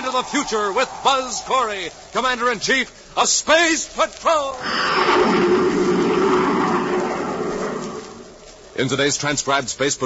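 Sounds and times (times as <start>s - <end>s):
roaring rocket sound effect: 4.6s - 8.6s.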